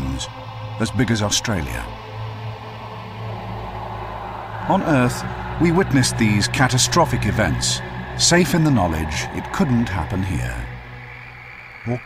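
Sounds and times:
low drone background score: 0.0s - 12.0s.

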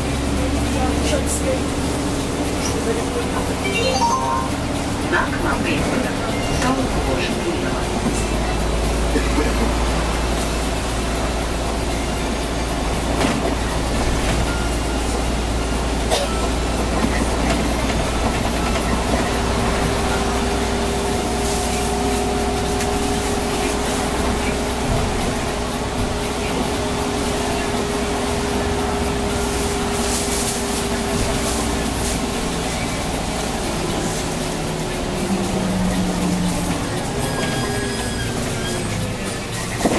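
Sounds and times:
bus engine and tyre rumble: 0.0s - 39.9s.

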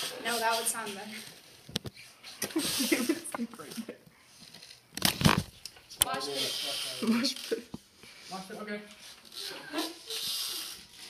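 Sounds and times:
person hissing shhh: 9.4s - 10.8s.

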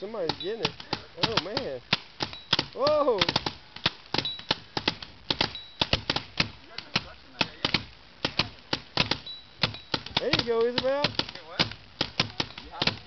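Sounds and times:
paintball markers firing: 0.0s - 13.0s.

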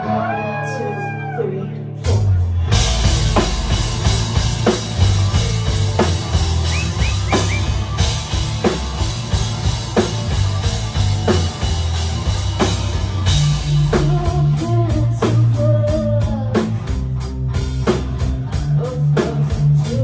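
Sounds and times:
electric guitar: 0.0s - 20.0s
heavy electric bass line: 2.0s - 20.0s
higher melodic line: 2.7s - 14.8s
slow drum beat: 2.7s - 20.0s.

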